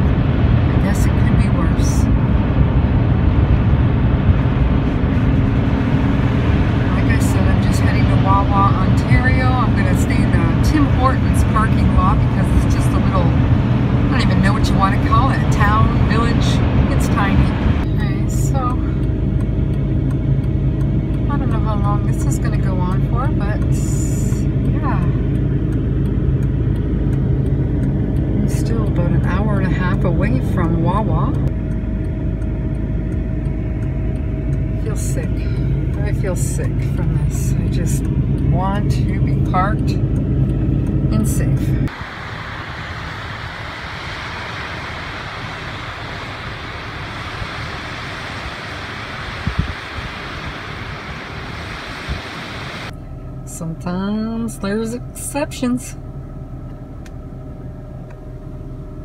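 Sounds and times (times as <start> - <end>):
even rushing noise: 0.0 - 19.4, 38.2 - 52.9
van engine and road noise: 0.0 - 59.0.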